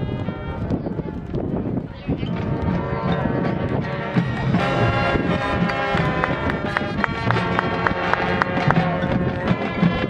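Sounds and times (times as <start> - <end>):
marching band brass held notes: 0.0 - 0.6, 2.4 - 10.0.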